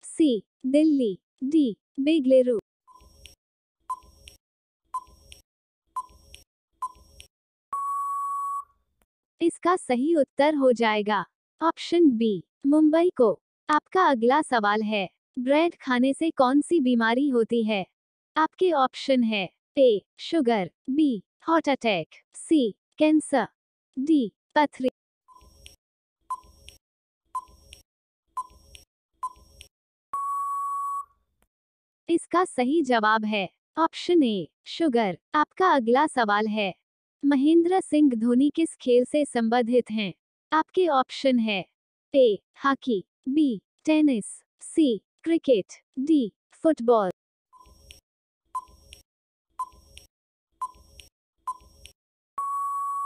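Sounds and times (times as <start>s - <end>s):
steady timer beep: 3.9s - 4.3s, 5.0s - 5.4s, 6.0s - 6.2s, 6.8s - 8.6s, 26.3s - 26.6s, 27.4s - 27.6s, 28.4s - 28.6s, 29.2s - 29.5s, 30.2s - 31.1s, 48.6s - 48.8s, 49.6s - 50.9s, 51.5s - 51.8s, 52.4s - 53.0s
long steady beep: 7.7s - 8.7s, 30.1s - 31.1s, 52.4s - 53.0s.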